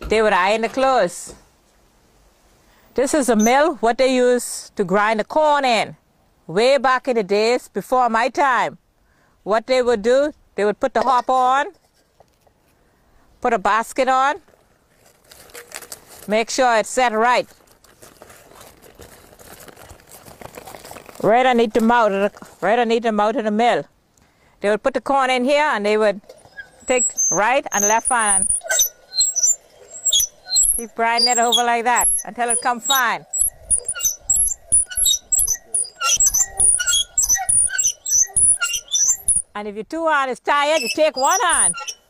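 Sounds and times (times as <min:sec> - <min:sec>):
high squeaks: 0:03.2 - 0:03.8, 0:26.3 - 0:39.5, 0:40.7 - 0:42.0
hand mill grinding corn: 0:17.6 - 0:21.4, 0:26.4 - 0:39.5, 0:40.7 - 0:42.0.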